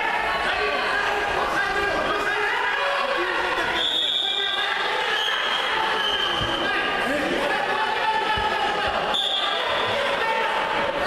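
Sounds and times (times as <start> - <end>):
crowd chatter echoing: 0.0 - 11.0
referee's whistle blast: 3.8 - 6.7, 9.1 - 9.9.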